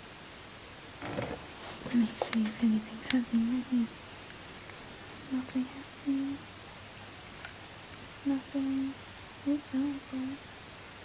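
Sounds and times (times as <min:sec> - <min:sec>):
person humming: 0:05.3 - 0:06.4, 0:08.2 - 0:10.4.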